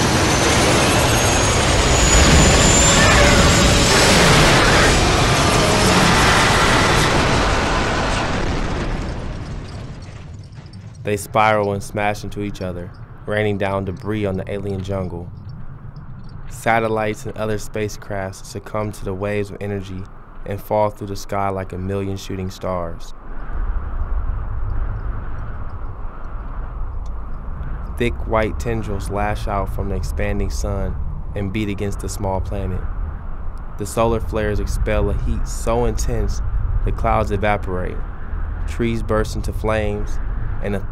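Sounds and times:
deep rumbling roar with hiss: 0.0 - 10.0
explosive engine rumbling: 0.0 - 40.9.

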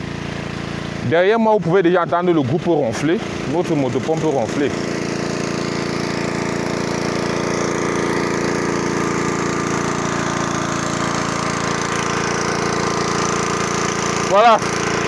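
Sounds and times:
engine-driven water pump running: 0.0 - 15.0.

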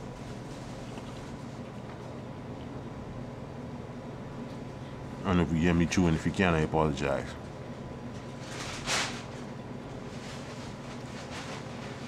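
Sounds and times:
low room hum: 0.0 - 12.0
person chewing: 0.7 - 2.0.

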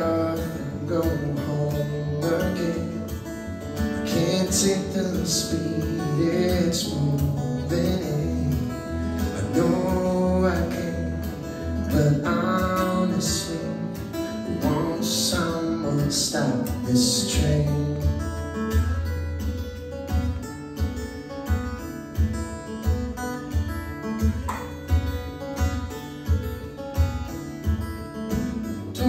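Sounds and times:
fingerstyle acoustic guitar: 0.0 - 29.0.

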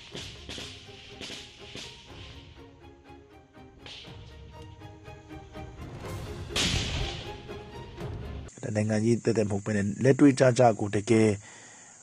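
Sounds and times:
background music: 0.0 - 8.6
grenade launcher blast: 6.5 - 7.3.

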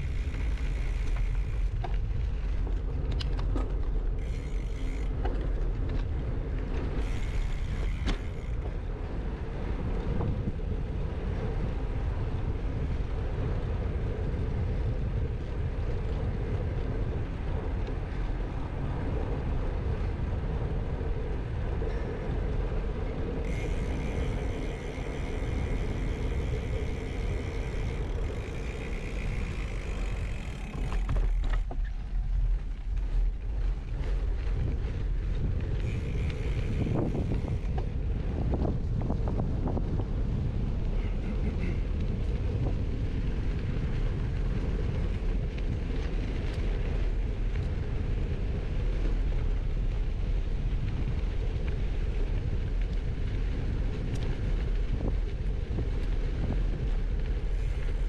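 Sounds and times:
bike tyre noise: 0.0 - 58.0
tyres crackling on dirt path: 0.0 - 58.0
wind on camera microphone: 0.0 - 58.0.

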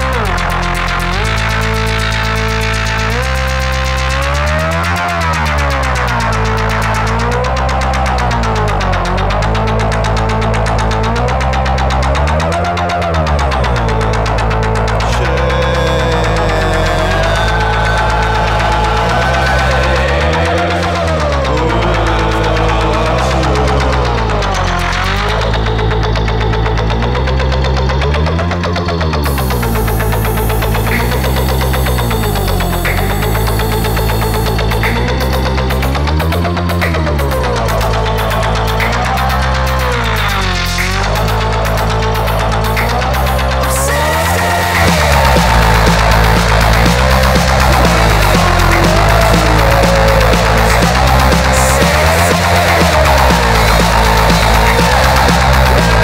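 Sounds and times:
synthesizer low drone: 0.0 - 56.0.

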